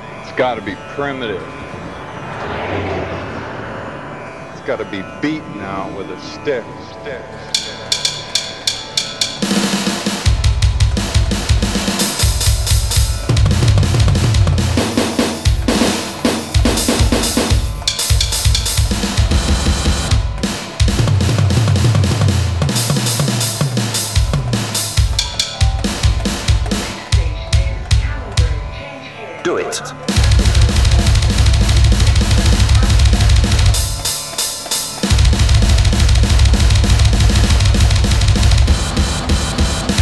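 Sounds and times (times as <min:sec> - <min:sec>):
sampled drum beat: 0:09.2 - 0:28.6, 0:30.1 - 0:40.0
heavy kick drum: 0:30.1 - 0:34.0, 0:35.1 - 0:40.0.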